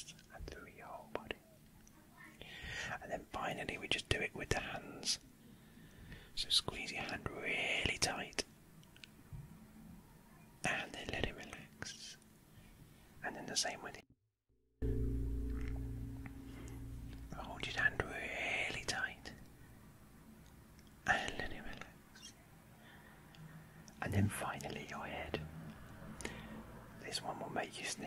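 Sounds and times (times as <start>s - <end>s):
close whispering: 0.0s - 1.4s, 2.8s - 5.2s, 6.4s - 8.5s, 10.6s - 12.2s, 13.2s - 14.0s, 17.3s - 19.4s, 21.0s - 22.4s, 24.0s - 25.5s, 27.0s - 28.0s
breathing: 2.4s - 3.0s, 5.4s - 6.4s, 12.5s - 13.2s, 22.7s - 23.8s, 26.2s - 26.9s
low steady hum: 14.8s - 28.0s.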